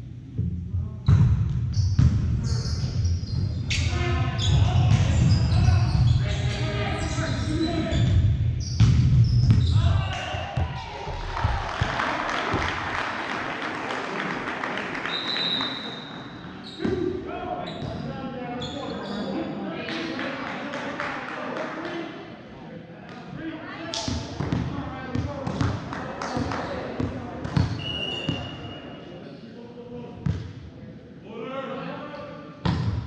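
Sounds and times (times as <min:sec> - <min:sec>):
people shouting in a gym: 0:03.8 - 0:07.8, 0:09.6 - 0:12.3
clapping and cheering: 0:11.0 - 0:16.2
referee's whistle: 0:15.0 - 0:16.9, 0:27.7 - 0:29.0.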